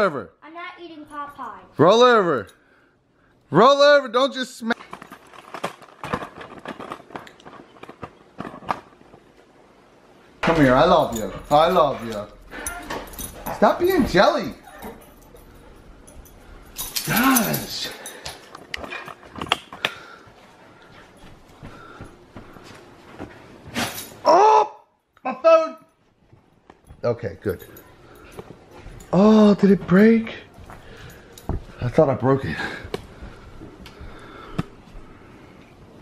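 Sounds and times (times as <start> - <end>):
dogs scuffling and knocking: 10.4 - 24.2.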